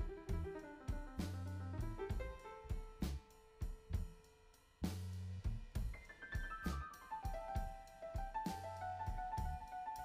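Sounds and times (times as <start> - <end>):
instrumental music with drum kit: 0.0 - 10.0.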